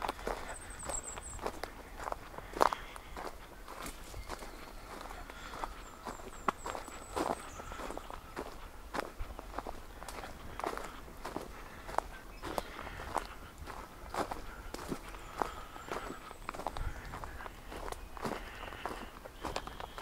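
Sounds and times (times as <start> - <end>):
footsteps crunching on wood chips: 0.0 - 20.0.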